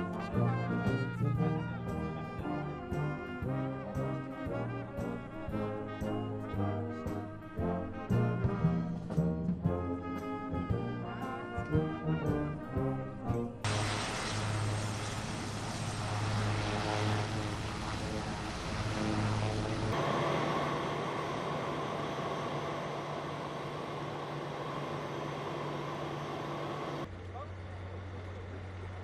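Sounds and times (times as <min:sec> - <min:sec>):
aircraft engines humming: 0:00.0 - 0:29.0.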